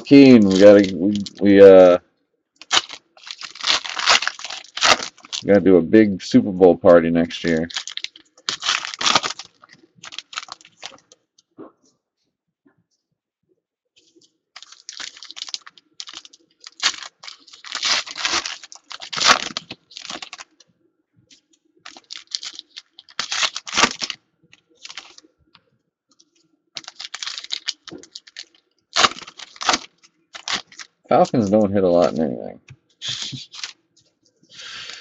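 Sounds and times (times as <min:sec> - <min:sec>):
foil wrappers crinkling and tearing: 0:00.0 - 0:02.0, 0:02.6 - 0:05.6, 0:07.3 - 0:11.2, 0:14.6 - 0:20.6, 0:21.8 - 0:25.3, 0:26.8 - 0:32.2, 0:33.0 - 0:33.8.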